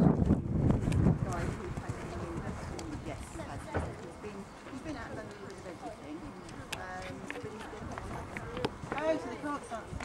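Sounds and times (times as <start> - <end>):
horse hooves on sand: 0.0 - 10.0
background chatter of voices: 0.5 - 10.0.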